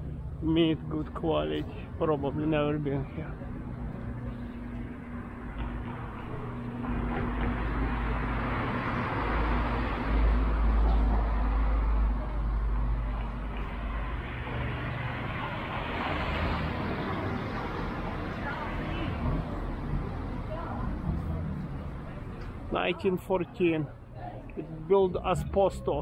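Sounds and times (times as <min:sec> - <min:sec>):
car approaching: 0:00.0 - 0:23.0
car traffic passing: 0:01.2 - 0:23.0.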